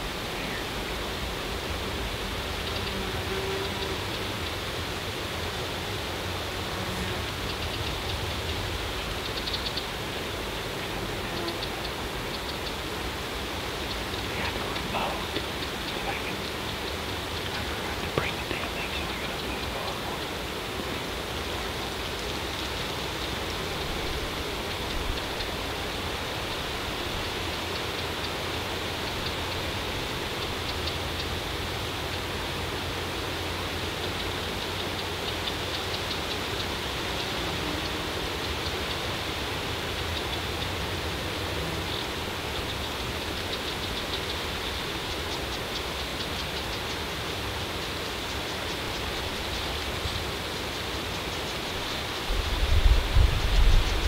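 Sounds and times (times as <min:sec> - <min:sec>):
steady outdoor hiss: 0:00.0 - 0:54.0.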